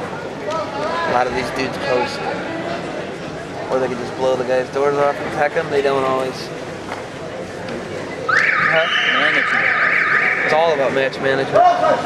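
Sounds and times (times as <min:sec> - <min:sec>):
man talking: 0:10.4 - 0:12.0.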